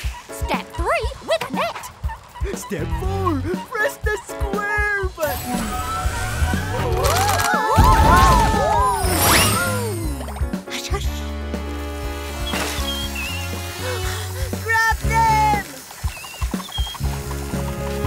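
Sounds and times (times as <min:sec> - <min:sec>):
bouncy children's music: 0:00.0 - 0:07.7, 0:08.9 - 0:18.0
shimmering magical sound effect: 0:08.8 - 0:10.4.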